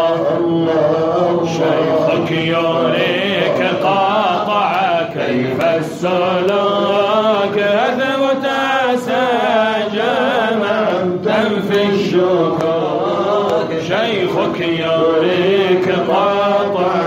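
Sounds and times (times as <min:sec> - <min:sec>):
voices chanting devotional poem: 0:00.0 - 0:17.0.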